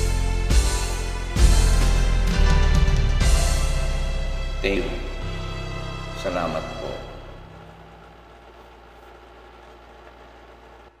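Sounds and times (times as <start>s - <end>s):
sustained backing track chord: 0.0s - 11.0s.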